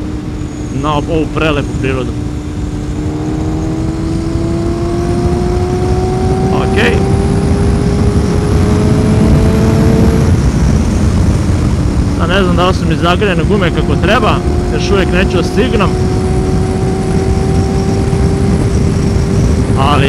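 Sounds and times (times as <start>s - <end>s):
motorcycle engine accelerating: 0.0s - 20.0s
wind rushing on microphone: 0.0s - 20.0s.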